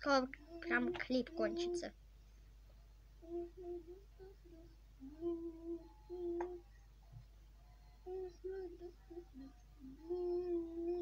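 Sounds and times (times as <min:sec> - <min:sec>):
person humming a tune: 0:00.0 - 0:01.8, 0:03.2 - 0:06.7, 0:08.0 - 0:11.0.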